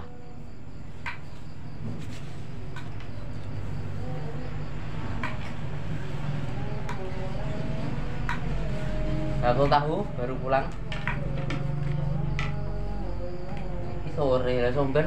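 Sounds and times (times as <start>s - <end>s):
motor vehicle engine hum: 0.0s - 15.0s.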